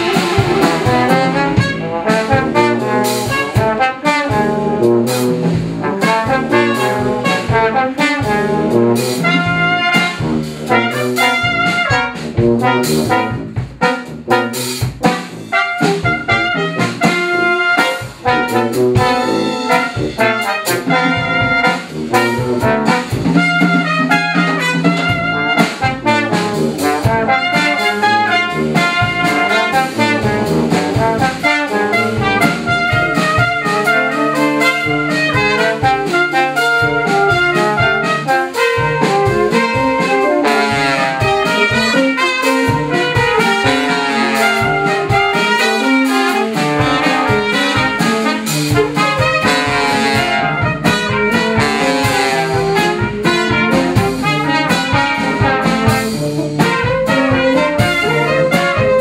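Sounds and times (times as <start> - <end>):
brass ensemble playing: 0.0 - 59.0
steady drum beat: 0.0 - 59.0.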